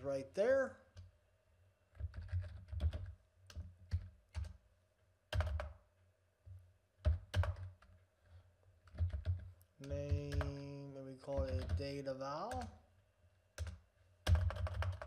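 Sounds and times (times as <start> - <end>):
typing on computer keyboard: 1.9 - 4.6, 5.3 - 5.8, 7.0 - 8.0, 8.8 - 12.8, 13.6 - 15.0.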